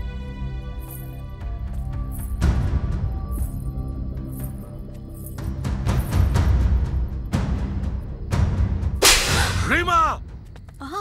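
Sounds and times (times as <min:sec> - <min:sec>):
whip-like swish hit: 0:09.0 - 0:09.6.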